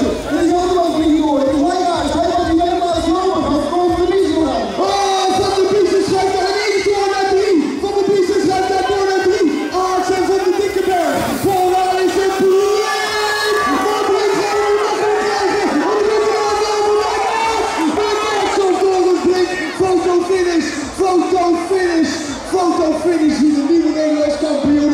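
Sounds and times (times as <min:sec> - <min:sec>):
crowd shouting and cheering: 0:00.0 - 0:24.9
loud raised voice: 0:07.4 - 0:23.8.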